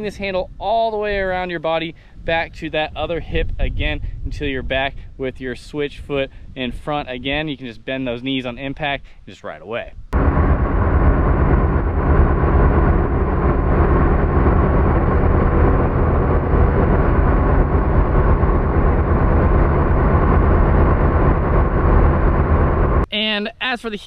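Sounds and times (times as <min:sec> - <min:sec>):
boat engine droning: 0:10.2 - 0:23.1.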